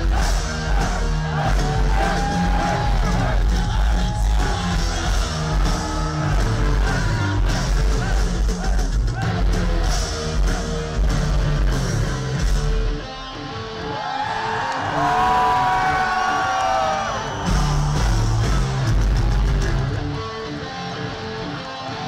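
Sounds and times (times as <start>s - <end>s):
live heavy metal band: 0.0s - 22.0s
lead electric guitar bending notes: 9.2s - 13.9s, 18.4s - 22.0s.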